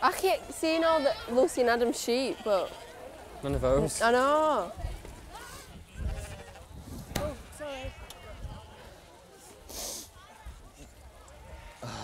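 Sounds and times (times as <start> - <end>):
sheep bleating: 2.0 - 2.9.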